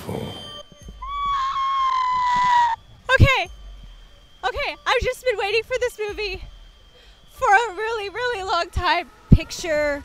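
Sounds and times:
woman screaming: 1.0 - 2.8.

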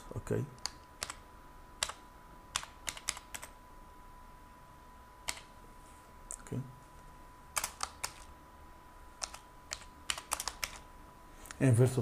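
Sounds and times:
keyboard typing clicks: 0.6 - 1.2, 1.8 - 3.6, 5.2 - 5.5, 7.6 - 8.3, 9.2 - 10.8.

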